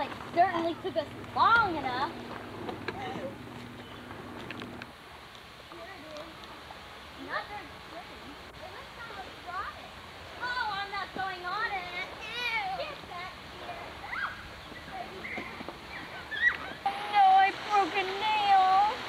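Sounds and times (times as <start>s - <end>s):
children calling and chattering: 0.0s - 4.3s, 7.1s - 19.0s
faint outdoor hiss: 0.0s - 19.0s.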